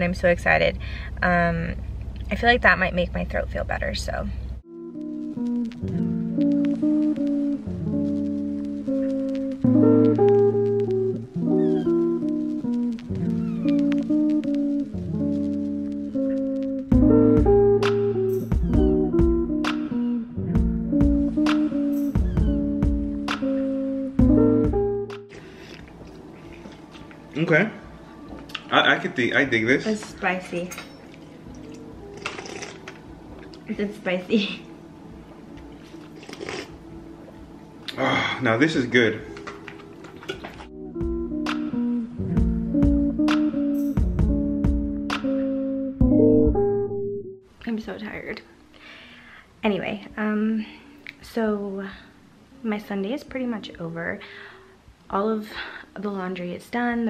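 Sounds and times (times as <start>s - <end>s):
person chewing food: 31.0s - 33.6s, 35.5s - 38.0s, 39.3s - 40.7s.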